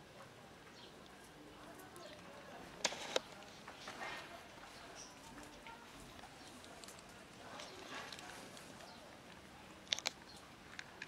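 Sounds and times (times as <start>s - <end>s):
kittens crunching dry kibble: 1.0s - 11.0s.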